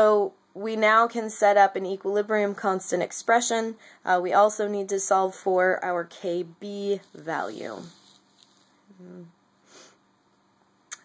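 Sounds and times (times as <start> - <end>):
person speaking: 6.2 - 8.2, 8.9 - 9.3
person saying uh: 8.9 - 9.3
quick intake of breath: 9.6 - 10.0
sniff: 9.6 - 10.0.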